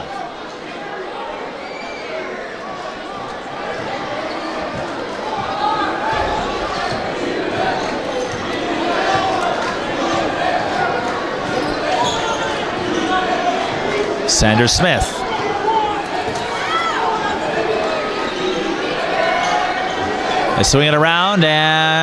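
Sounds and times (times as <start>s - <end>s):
crowd chatter and calls: 0.0s - 22.0s.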